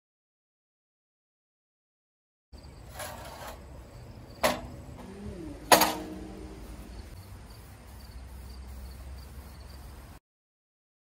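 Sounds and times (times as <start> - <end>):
metallic clanks on steel beam: 4.4 - 4.8, 5.7 - 6.4.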